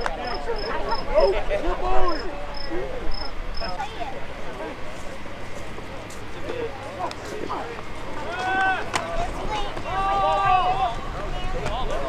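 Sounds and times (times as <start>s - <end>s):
distant voices calling: 0.0s - 12.0s
insect chirping: 2.1s - 3.8s.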